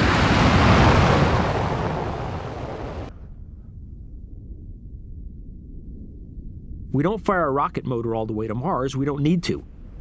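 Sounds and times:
rocket thruster roar: 0.0s - 3.1s
faint low rumble: 0.0s - 10.0s.

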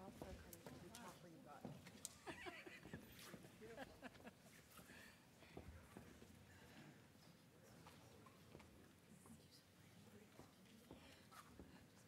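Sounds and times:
laughter: 2.1s - 4.6s.

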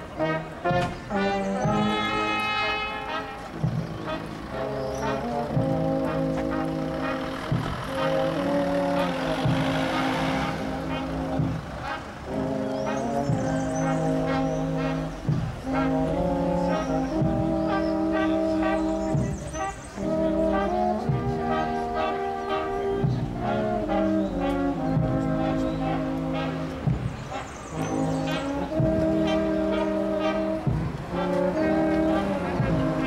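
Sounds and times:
brass band playing a slow march: 0.0s - 33.0s
car passing: 0.0s - 33.0s.

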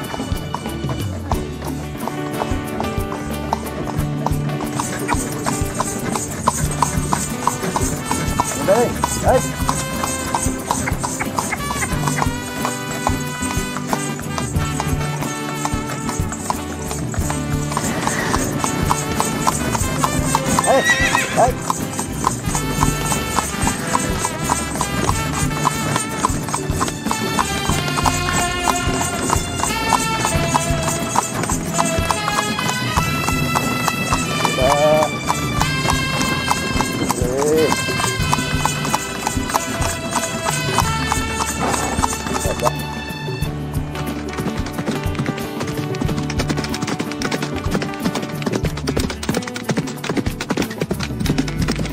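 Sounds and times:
background music: 0.0s - 51.9s
horse hooves clip-clopping on pavement: 0.0s - 51.9s.

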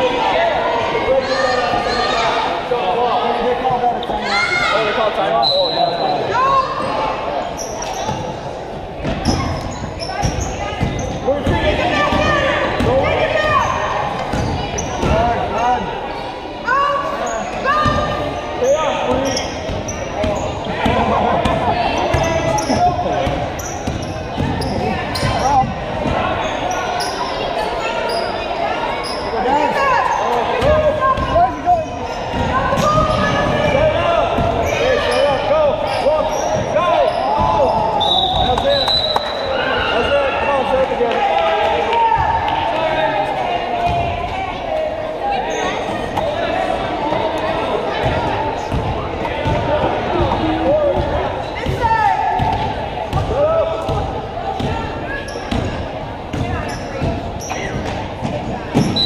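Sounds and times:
sneakers squeaking: 3.9s - 40.3s, 43.8s - 59.0s
basketball bouncing on court: 9.0s - 13.6s, 19.1s - 26.2s, 48.0s - 54.8s, 55.5s - 59.0s.

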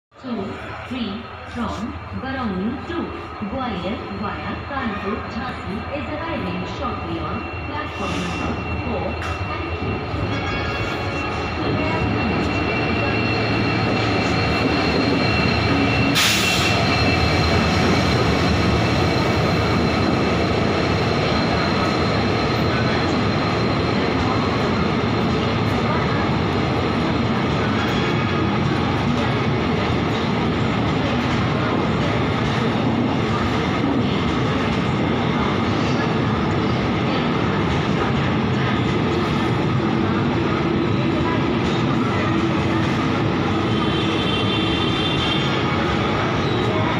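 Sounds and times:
train rumbling past: 0.3s - 46.9s.

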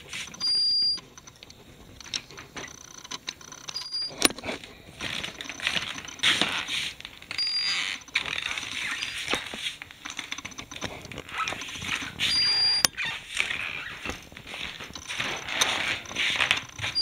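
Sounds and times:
metal detector beeping: 0.2s - 4.4s, 5.0s - 10.8s, 11.4s - 17.0s.

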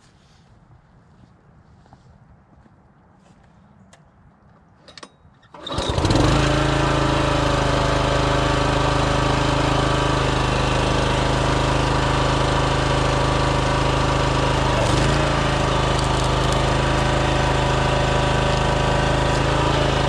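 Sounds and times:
log splitter engine running: 5.5s - 20.0s.

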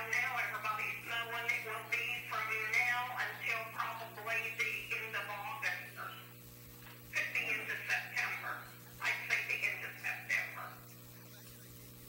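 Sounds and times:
steady mains hum: 0.0s - 12.0s
indistinct talking: 7.1s - 11.0s.

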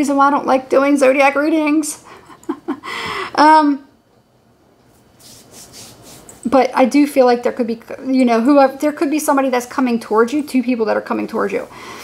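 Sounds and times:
hand brushing over clothing: 4.9s - 6.4s.

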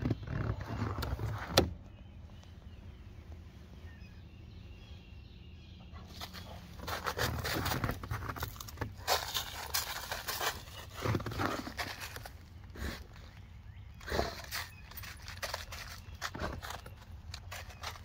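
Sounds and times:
dog snuffling in leaves: 6.0s - 13.4s
leaves rustling and crunching: 6.1s - 13.4s.

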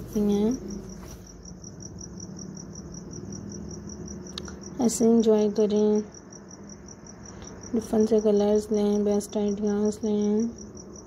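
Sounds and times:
faint low hum: 0.0s - 11.0s
insect chirping: 0.0s - 11.0s.

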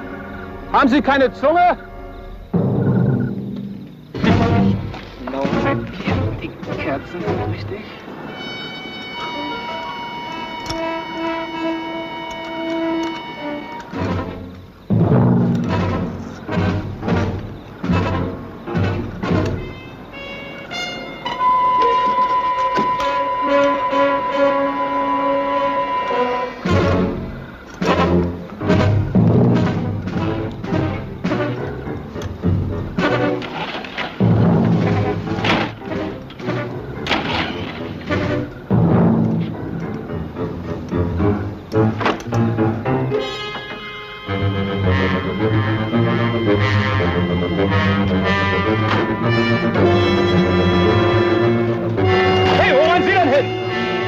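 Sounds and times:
brass chords: 4.1s - 7.4s, 8.0s - 33.6s, 34.2s - 54.0s.

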